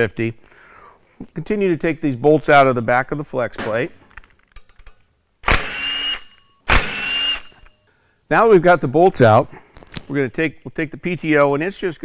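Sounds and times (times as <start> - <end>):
cordless power tool whining: 5.5 - 7.7.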